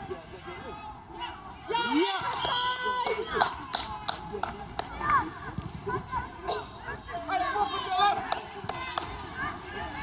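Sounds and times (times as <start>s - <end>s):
people shouting: 0.7s - 4.1s
sharp hand claps: 2.3s - 5.0s.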